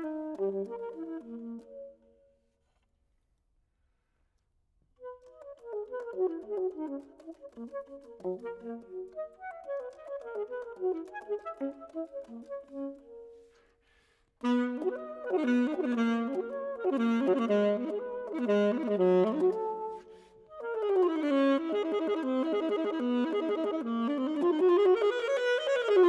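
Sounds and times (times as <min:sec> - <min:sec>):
soprano saxophone arpeggios: 0:00.0 - 0:02.4, 0:05.0 - 0:13.5, 0:14.4 - 0:26.0.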